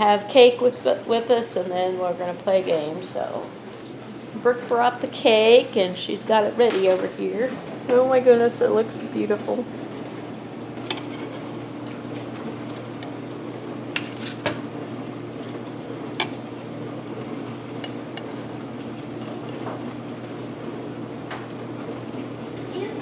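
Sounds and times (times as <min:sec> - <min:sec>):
knife clinking against plate: 0:10.9 - 0:11.4.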